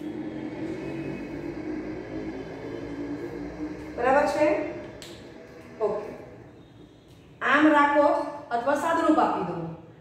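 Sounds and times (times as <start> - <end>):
low background hum: 0.0 - 9.4.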